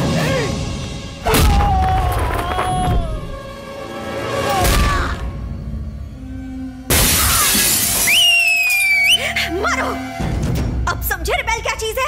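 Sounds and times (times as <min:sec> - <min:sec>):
dramatic film score: 0:00.0 - 0:12.0
glass shattering: 0:06.9 - 0:08.3.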